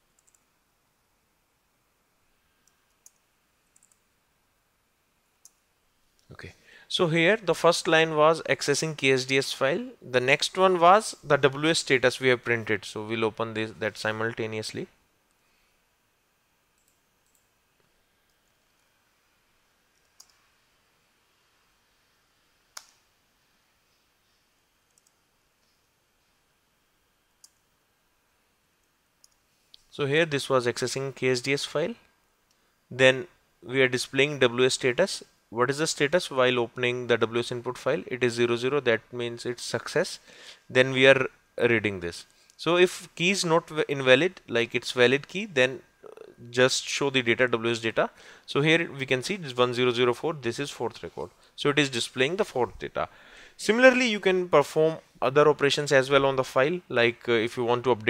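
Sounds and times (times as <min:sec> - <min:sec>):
computer keys clicking: 0:00.1 - 0:00.5, 0:02.6 - 0:04.0, 0:16.8 - 0:17.5, 0:19.9 - 0:20.4, 0:22.7 - 0:23.0, 0:24.8 - 0:25.7, 0:27.3 - 0:27.6
faint sharp computer clicks: 0:00.1 - 0:00.5, 0:02.6 - 0:04.1.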